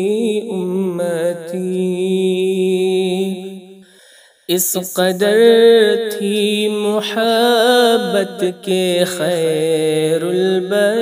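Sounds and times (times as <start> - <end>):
person singing a cappella: 0.0 - 3.8, 4.5 - 11.0.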